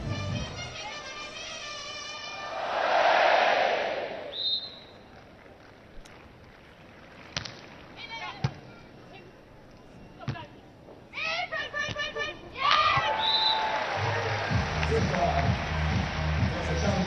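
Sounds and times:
crowd noise: 0.0s - 5.9s, 6.5s - 17.0s
referee's whistle: 4.3s - 5.0s, 13.1s - 13.7s.

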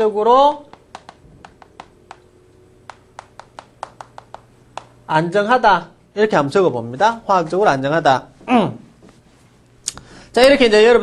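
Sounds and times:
writing taps on a board: 0.6s - 5.0s.

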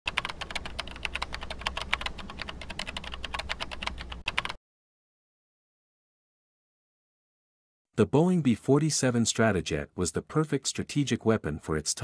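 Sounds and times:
rapid keyboard key clicks: 0.1s - 4.6s.

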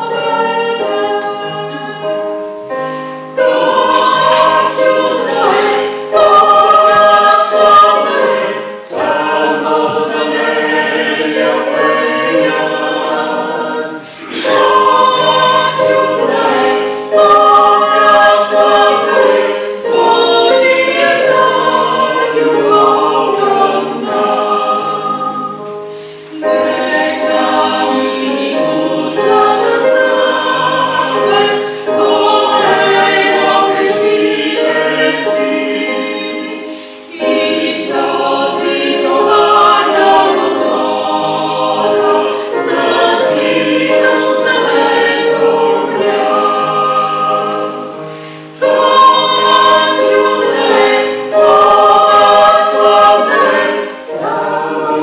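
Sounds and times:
choir singing a hymn: 0.0s - 55.0s
keyboard accompaniment: 0.0s - 55.0s.

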